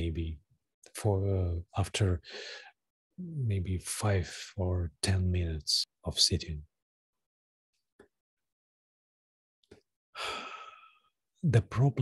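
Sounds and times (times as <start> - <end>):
man speaking: 0.0 - 2.2, 3.2 - 6.7, 11.4 - 12.0
man breathing out: 10.2 - 11.1.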